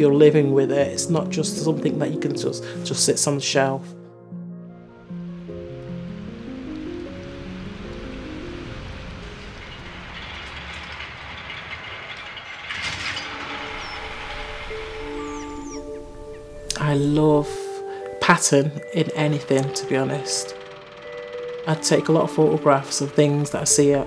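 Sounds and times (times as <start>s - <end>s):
soft background music: 0.0s - 10.4s, 13.2s - 24.0s
textile machine clatter and hiss: 7.2s - 15.0s.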